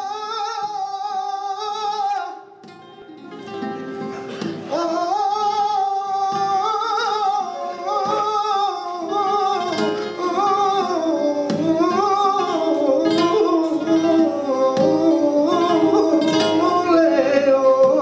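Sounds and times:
flamenco guitar: 0.0 - 18.0
man singing flamenco: 0.0 - 18.0.

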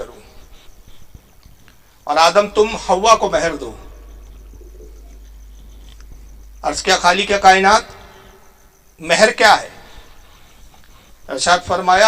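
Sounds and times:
low hum: 2.3 - 9.2
faint low call: 2.9 - 8.6.

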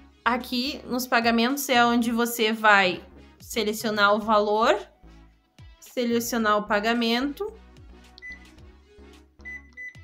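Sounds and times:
faint background music: 0.0 - 10.0
payment terminal key beeps: 8.2 - 8.5, 9.4 - 10.0.

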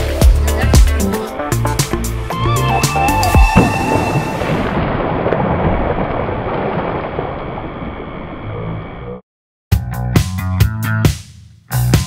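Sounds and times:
rumbling wash of water: 1.5 - 8.9
wooden board splashing into water: 3.4 - 7.1.

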